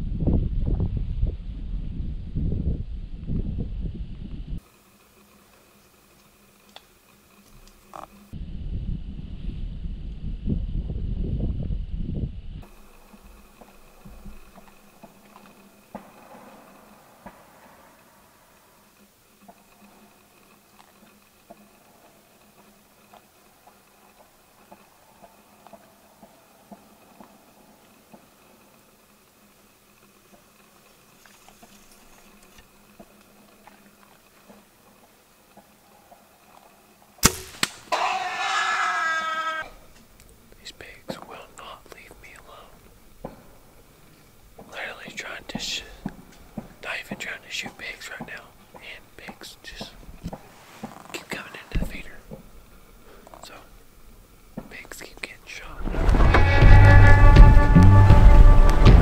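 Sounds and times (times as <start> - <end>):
faint steady hum: 0.0 - 59.0
bowshot crack: 37.2 - 38.4
hog squealing loudly: 37.9 - 39.7
hushed excited whispering: 40.6 - 42.8, 44.7 - 46.1, 46.8 - 50.0, 51.0 - 52.4, 53.2 - 53.8, 54.6 - 56.0.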